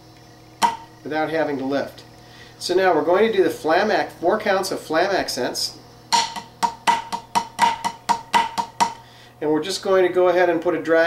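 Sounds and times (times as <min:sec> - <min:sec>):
drumsticks on practice pad: 0:06.1 - 0:09.0.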